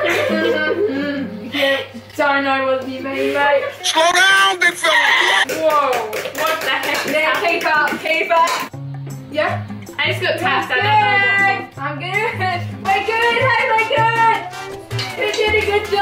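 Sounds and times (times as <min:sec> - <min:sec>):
girls calling out and laughing: 0:03.8 - 0:05.4.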